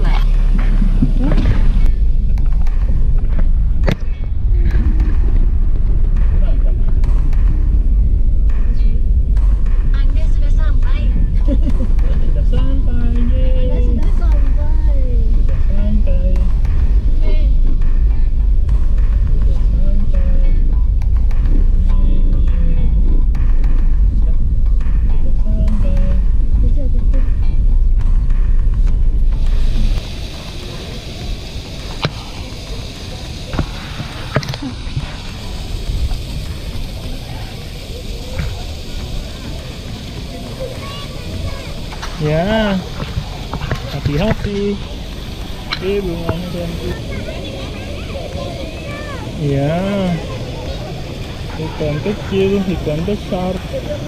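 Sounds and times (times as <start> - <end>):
car interior rumble: 0.0 - 54.0.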